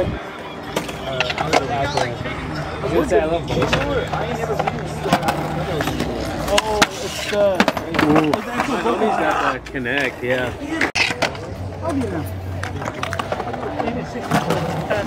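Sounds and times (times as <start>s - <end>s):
people talking: 0.0s - 15.0s
skateboard wheels rolling on concrete: 0.0s - 15.0s
skateboards clacking on ground: 0.6s - 2.2s, 3.5s - 15.0s.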